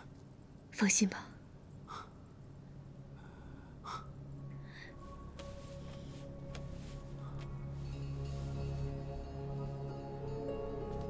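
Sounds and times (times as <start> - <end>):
faint breaths: 1.7 - 9.1.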